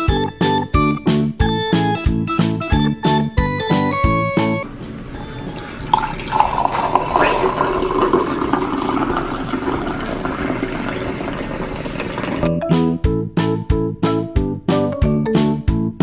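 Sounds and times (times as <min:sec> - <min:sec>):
drink pouring into glass: 0:05.6 - 0:12.5.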